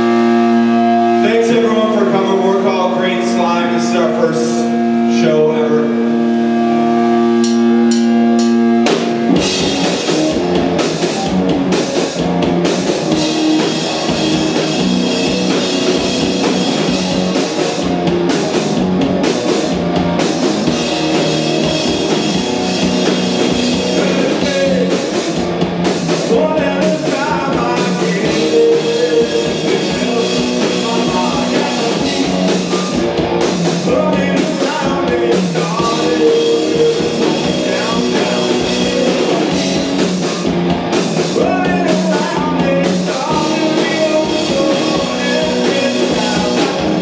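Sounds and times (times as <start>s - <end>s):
ringing guitar drone: 0.0s - 26.2s, 26.8s - 41.1s
live rock band playing: 0.0s - 47.0s.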